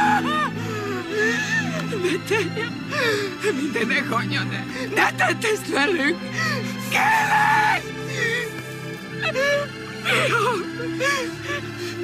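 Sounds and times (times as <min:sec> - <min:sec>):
woman crying: 0:00.0 - 0:12.0.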